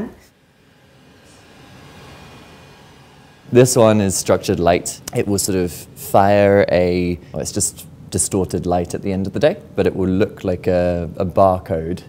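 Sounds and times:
fan running with high whine: 0.0s - 12.0s.

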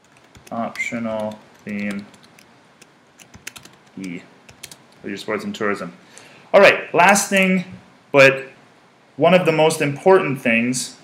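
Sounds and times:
typing on computer keyboard: 0.0s - 4.8s.

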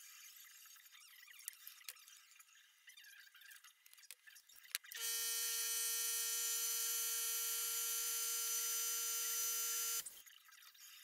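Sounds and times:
electronic buzz tone: 5.0s - 10.1s.

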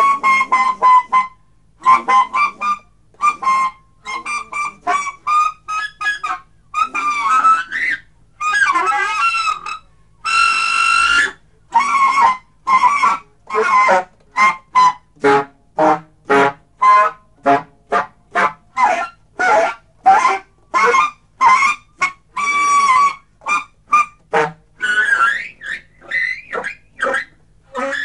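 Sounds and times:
alto saxophone improvising: 0.0s - 28.0s.

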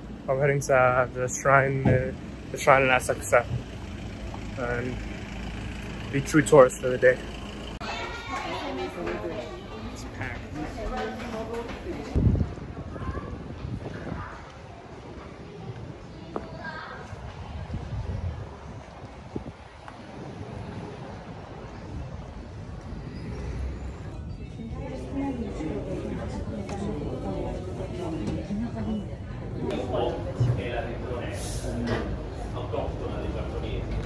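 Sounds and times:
people chattering: 0.0s - 34.0s
traffic rumble: 0.0s - 34.0s.

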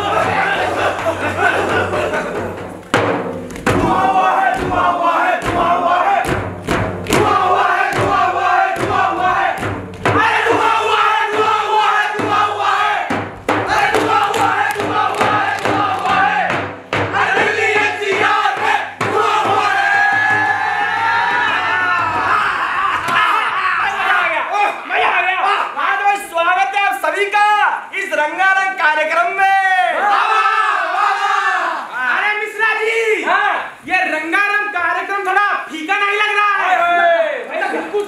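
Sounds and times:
group chanting in unison: 0.0s - 2.6s, 3.7s - 6.5s, 7.1s - 25.1s, 29.7s - 32.2s
percussive beats and stamps: 0.0s - 23.2s.

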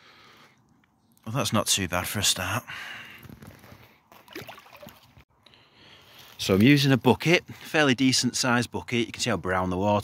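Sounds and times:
pond water trickling and splashing: 3.6s - 5.2s.

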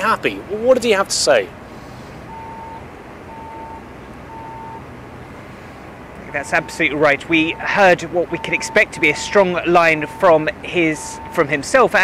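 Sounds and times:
street traffic hum: 0.0s - 12.0s
reversing alarm beeping: 2.3s - 4.8s, 6.4s - 10.4s, 11.0s - 11.5s.

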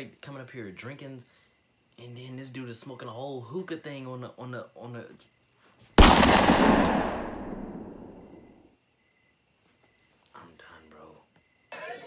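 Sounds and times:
loud bang: 6.0s - 8.5s.

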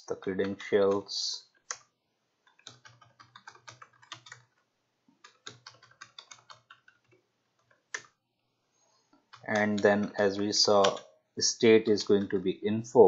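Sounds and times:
typing on computer keyboard: 0.4s - 8.1s.

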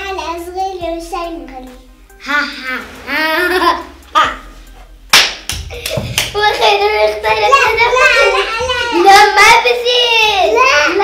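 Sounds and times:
sharp hand claps: 5.1s - 6.5s
young girls' excited voices: 6.3s - 11.0s.

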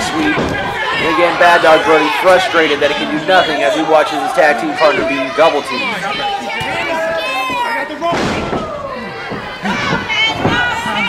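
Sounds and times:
people shouting: 0.0s - 11.0s
thud on wrestling ring: 8.1s - 8.7s.

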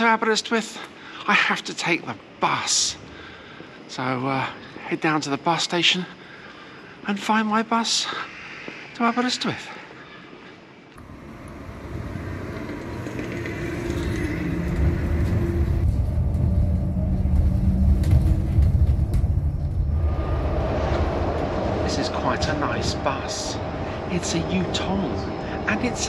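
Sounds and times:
faint steady tones: 0.2s - 26.0s
road and tyre rumble: 11.0s - 26.0s.

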